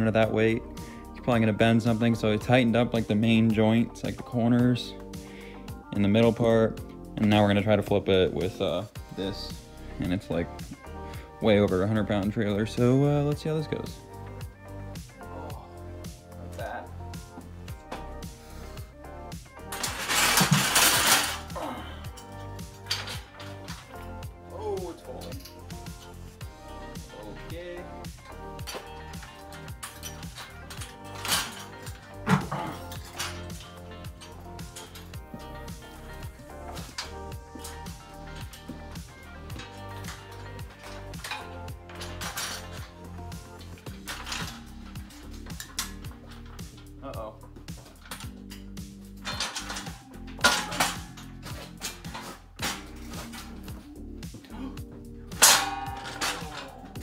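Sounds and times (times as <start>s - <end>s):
background music with beat: 0.0s - 57.0s
steel trailer frame clanking: 26.9s - 54.0s, 55.3s - 57.0s.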